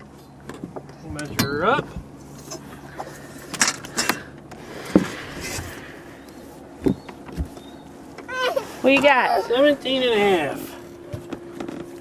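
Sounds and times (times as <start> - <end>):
knocks and clatter in boat: 6.8 - 8.3, 11.0 - 12.0.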